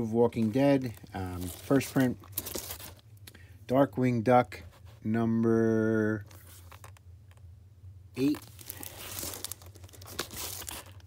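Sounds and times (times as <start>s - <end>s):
plastic bags crinkling: 0.2s - 3.0s, 8.2s - 11.0s.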